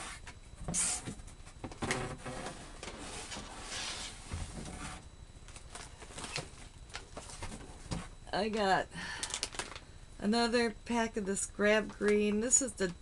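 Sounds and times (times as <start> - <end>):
packaged items rustling and knocking: 4.2 - 9.8.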